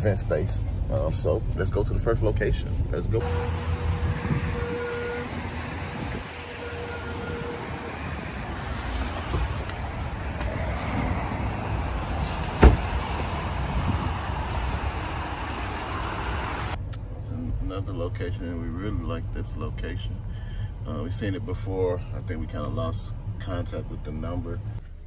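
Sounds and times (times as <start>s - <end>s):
road traffic noise: 0.0s - 25.0s.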